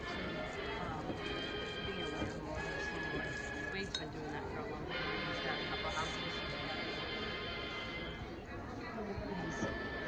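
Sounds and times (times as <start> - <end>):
dishes and cutlery clinking: 1.1 - 4.3.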